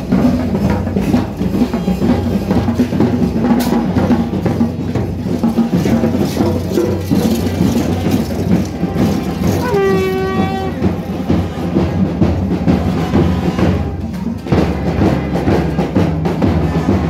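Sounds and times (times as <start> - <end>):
side drums drumming: 0.0 - 17.0.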